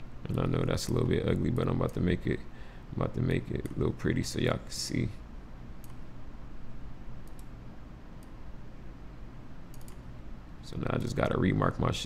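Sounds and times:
low room hum: 0.0 - 12.0
faint computer mouse clicks: 5.8 - 6.0, 7.2 - 7.5, 9.7 - 10.0.

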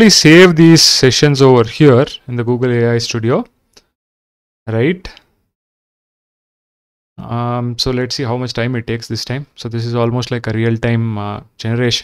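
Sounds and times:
man speaking: 0.0 - 3.5, 4.7 - 5.2, 7.2 - 12.0.

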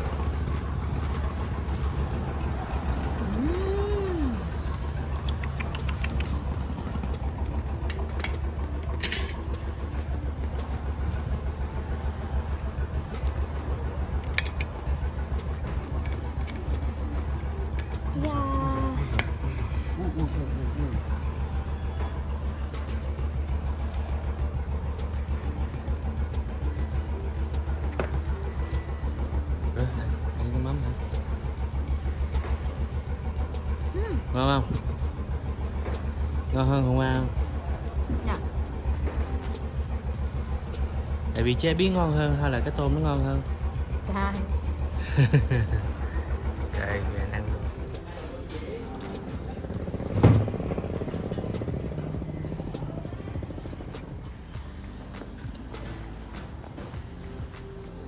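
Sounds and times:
voices: 0.0 - 7.2, 35.7 - 58.0
low engine hum: 0.0 - 58.0.

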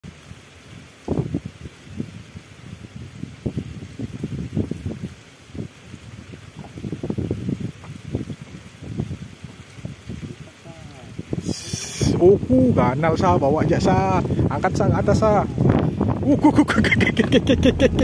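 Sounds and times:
low rumble of air and water: 0.0 - 18.0
wind buffeting microphone: 0.2 - 18.0.

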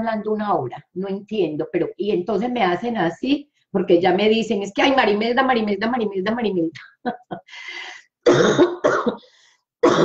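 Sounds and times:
woman coughing: 8.2 - 10.0.

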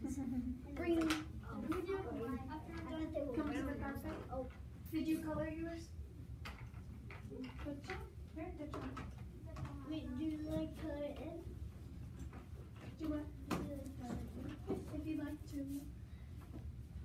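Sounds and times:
children talking: 0.0 - 6.1, 7.1 - 11.6.

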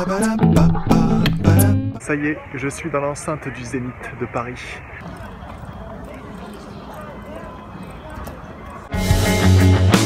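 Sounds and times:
faint indistinct voices: 2.0 - 9.2.

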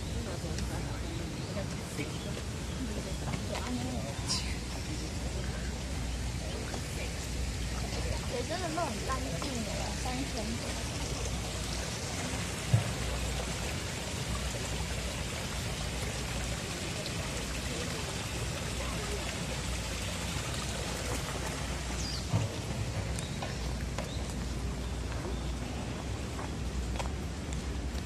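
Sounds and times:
stream water over stones: 0.0 - 28.0.

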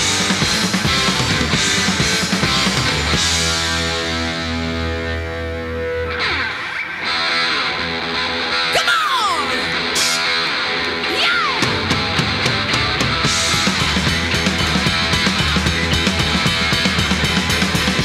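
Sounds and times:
bass and drums: 0.0 - 18.0
distorted electric guitar: 0.0 - 18.0.

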